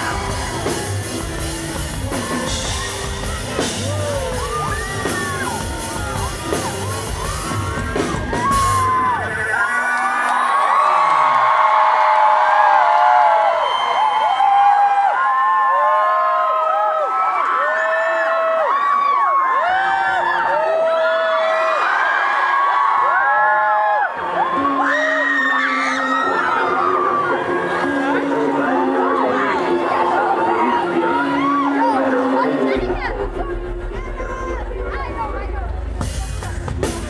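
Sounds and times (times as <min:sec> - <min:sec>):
live rock band playing: 0:00.0 - 0:09.5, 0:29.1 - 0:37.0
concert crowd cheering and screaming: 0:00.0 - 0:37.0.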